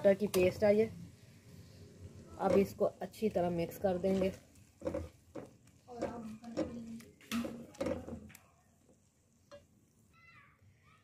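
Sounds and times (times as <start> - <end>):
spatula stirring and scraping pot: 2.4 - 8.3.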